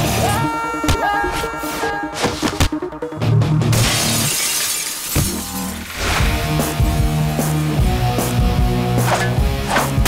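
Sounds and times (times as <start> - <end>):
action music: 0.0 - 4.3, 5.2 - 10.0
glass shattering: 3.7 - 6.2.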